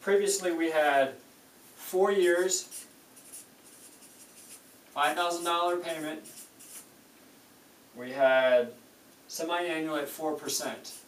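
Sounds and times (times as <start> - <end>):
marker pen writing on paper: 2.2 - 4.6, 5.8 - 6.9.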